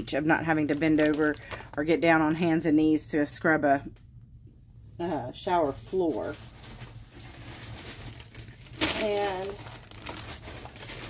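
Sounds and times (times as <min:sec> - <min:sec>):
plastic bag rustling: 0:00.0 - 0:02.2, 0:05.6 - 0:11.0
speech: 0:05.0 - 0:06.4, 0:08.8 - 0:09.6.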